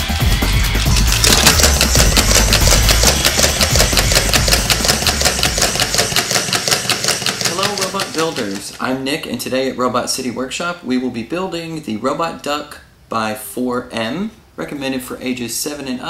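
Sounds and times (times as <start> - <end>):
bass-heavy music: 0.0 - 5.9
toy motor rapid clicking: 0.8 - 8.8
person speaking: 7.2 - 16.0.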